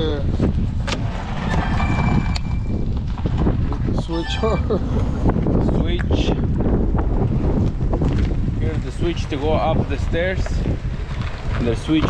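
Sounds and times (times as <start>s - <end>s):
wind rumbling on microphone: 0.0s - 12.0s
thin high tone: 1.4s - 3.0s, 4.0s - 5.3s.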